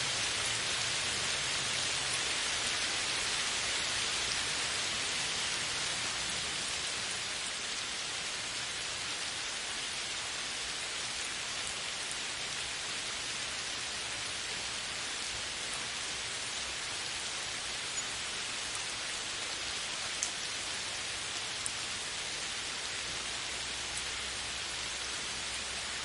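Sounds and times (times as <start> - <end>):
steady rainfall hiss: 0.0 - 26.0.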